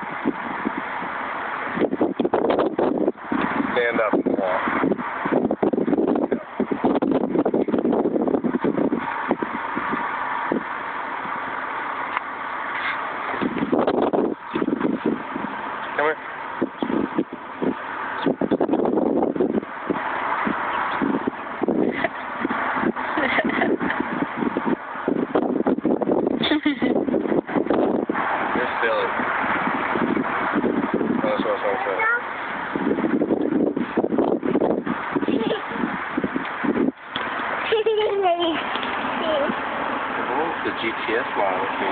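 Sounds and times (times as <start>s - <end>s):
steady outdoor noise: 0.0s - 41.9s
indistinct voices: 37.2s - 41.9s.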